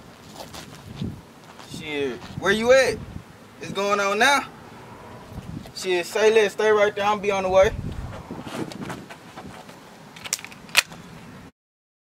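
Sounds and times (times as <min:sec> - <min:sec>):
faint outdoor background noise: 0:00.0 - 0:11.5.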